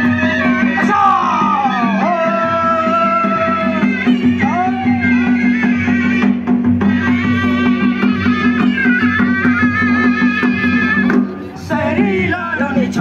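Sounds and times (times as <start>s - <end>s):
drum strokes: 0.0s - 13.0s.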